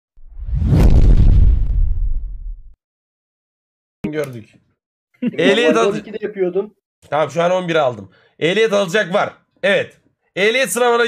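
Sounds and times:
deep explosion boom rumbling: 0.4 - 2.7.

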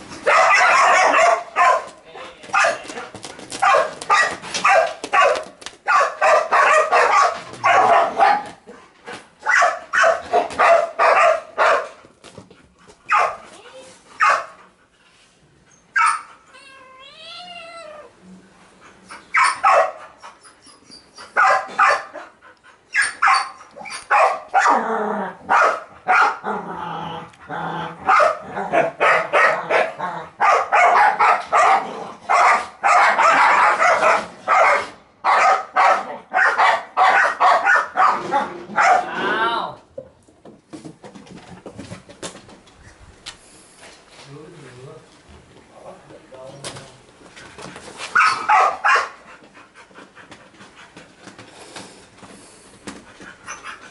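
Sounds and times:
dog barking: 0.2 - 2.8, 3.6 - 8.6, 9.4 - 12.0, 13.1 - 13.4, 14.2 - 14.6, 16.0 - 16.3, 19.3 - 20.0, 21.4 - 22.2, 23.0 - 24.8, 25.5 - 26.4, 28.0 - 39.1, 48.2 - 49.2.

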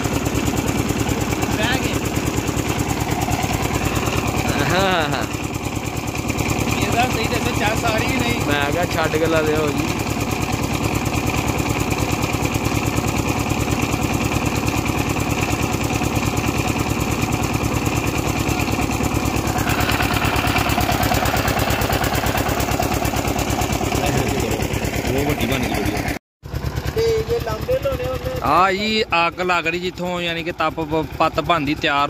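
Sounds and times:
engine running steadily: 0.0 - 32.0.

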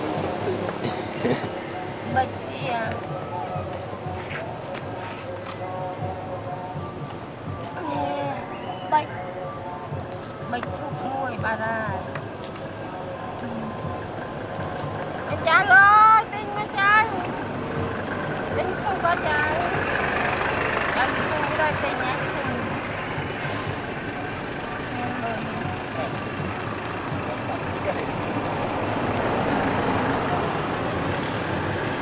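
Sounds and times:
faint indistinct voices: 0.0 - 32.0
outdoor background noise: 0.0 - 32.0.

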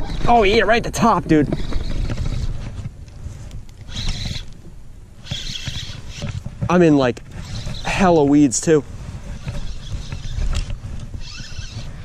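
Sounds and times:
fishing reel cranking: 3.9 - 4.5, 5.2 - 6.3, 9.6 - 12.0.

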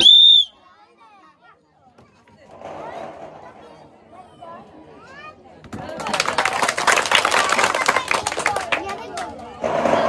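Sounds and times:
loud whistle blast: 0.0 - 0.6
faint crowd murmur: 0.0 - 10.0.

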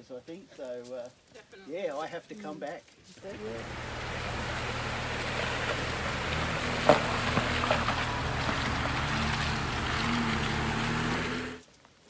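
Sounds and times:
car engine running at low speed: 3.2 - 11.6.

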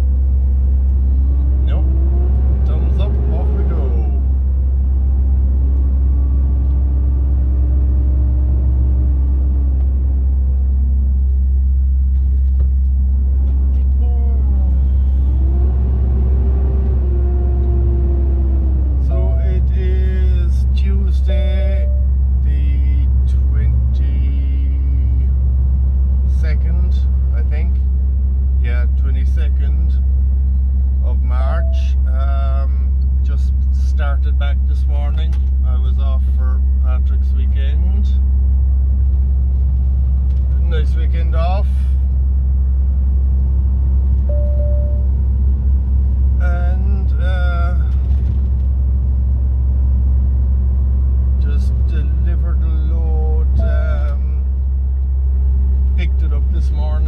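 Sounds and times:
vehicle engine accelerating and slowing: 0.0 - 57.0
person speaking: 19.0 - 24.5, 31.0 - 33.4, 51.4 - 54.4.

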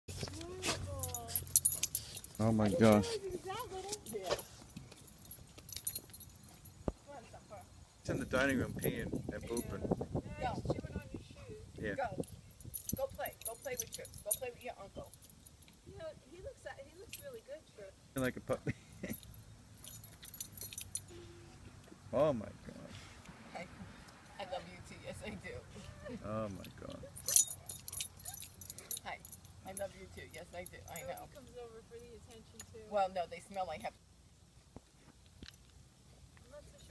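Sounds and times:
dog collar tags jingling: 0.2 - 6.9, 8.1 - 10.0, 12.1 - 15.8, 17.0 - 17.6, 18.9 - 21.2, 26.5 - 32.8.

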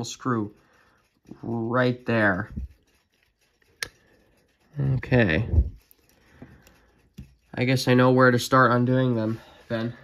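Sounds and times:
man talking: 0.0 - 0.6, 1.4 - 2.6, 4.7 - 5.8, 7.5 - 10.0.

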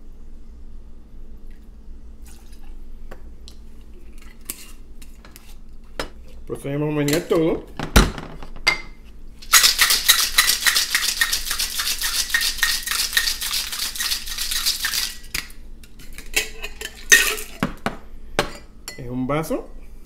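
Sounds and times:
ice rattling in cocktail shaker: 9.4 - 15.4.

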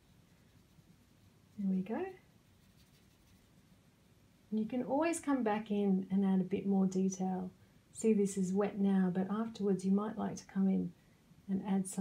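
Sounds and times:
wet paintbrush strokes on paper: 0.0 - 4.0.

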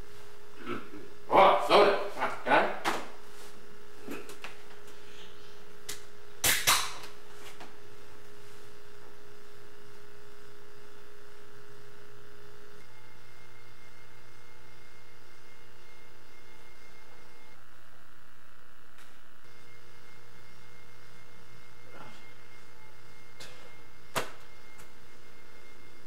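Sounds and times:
loud sharp snaps: 5.9 - 7.2
low hum: 7.1 - 26.0.

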